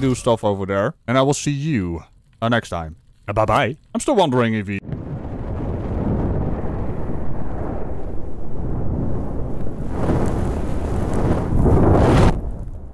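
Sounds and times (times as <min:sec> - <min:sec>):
deep noisy rumble: 0:04.8 - 0:12.9.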